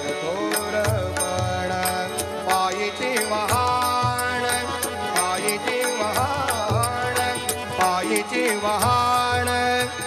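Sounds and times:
man singing into a microphone: 0:00.0 - 0:10.0
sharp percussion strikes: 0:00.0 - 0:10.0.

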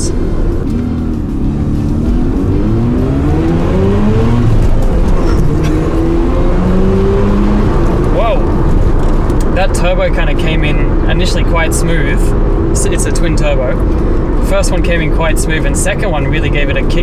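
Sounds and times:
rotary engine accelerating: 0:00.0 - 0:10.0.

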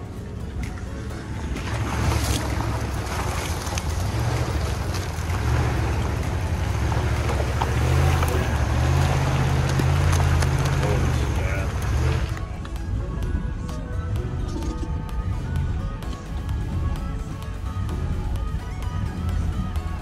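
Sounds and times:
tyres churning through mud: 0:00.0 - 0:13.1
truck engine pulling hard: 0:00.0 - 0:20.0.

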